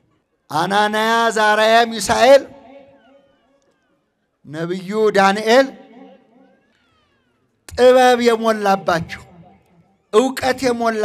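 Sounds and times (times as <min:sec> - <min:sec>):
man preaching: 0:00.5 - 0:02.7, 0:04.5 - 0:05.9, 0:07.7 - 0:09.4, 0:10.1 - 0:11.0.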